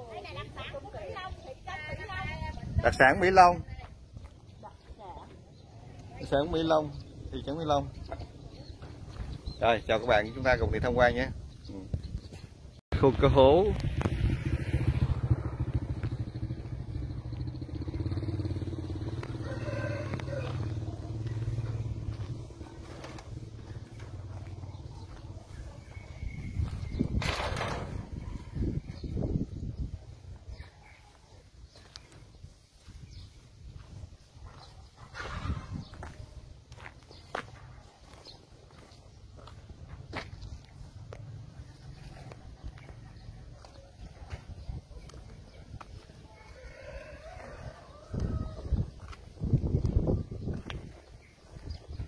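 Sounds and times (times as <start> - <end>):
footsteps on dirt road: 3.5 - 10.2, 11.4 - 13.1, 13.8 - 52.0
motorcycle engine running: 13.2 - 27.0.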